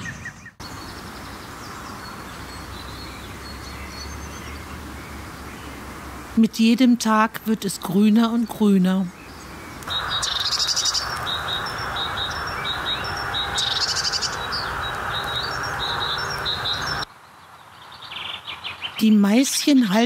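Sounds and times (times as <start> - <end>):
great tit singing: 8.1 - 20.0
steady hiss: 9.8 - 17.0.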